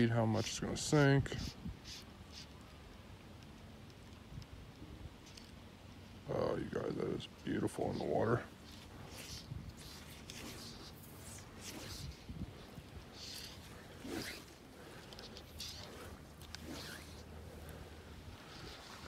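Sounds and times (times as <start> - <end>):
fly line zipping through rod guides: 0.0 - 19.0.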